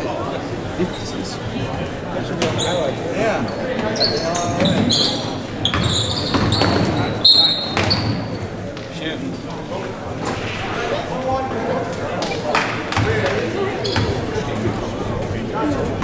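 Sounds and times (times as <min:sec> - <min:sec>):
crowd voices and shouting: 0:00.0 - 0:16.0
sneakers squeaking: 0:02.4 - 0:08.6, 0:12.9 - 0:14.2.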